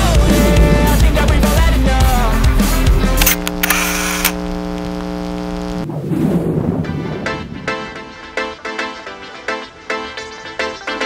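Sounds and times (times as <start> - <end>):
rock music: 0.0 - 3.3
steady buzzing tone: 2.2 - 5.9
sharp clicks with hiss: 3.2 - 5.1.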